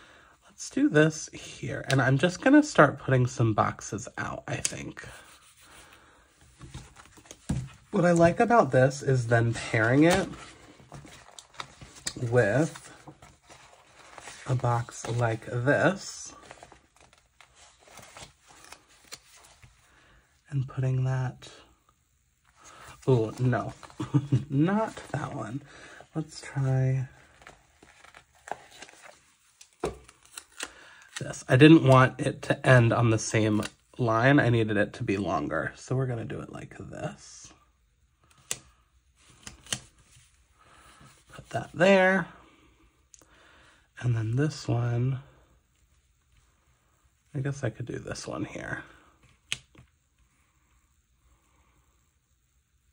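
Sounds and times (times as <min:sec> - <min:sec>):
paper rustling: 0:04.6 - 0:19.8, 0:22.6 - 0:31.3.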